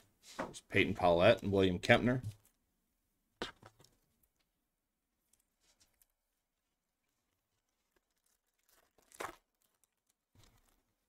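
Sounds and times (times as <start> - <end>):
wrapper crinkling: 7.0 - 11.0
foil wrapper ripping: 7.8 - 11.0.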